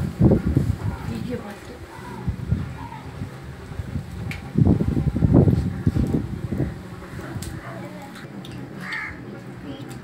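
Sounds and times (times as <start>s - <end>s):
wind buffeting microphone: 0.0s - 8.1s.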